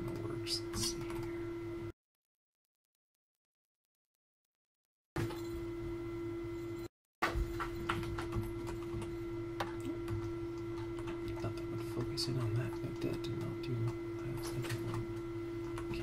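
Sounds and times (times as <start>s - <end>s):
steady electrical hum: 0.0s - 1.9s, 5.2s - 16.0s.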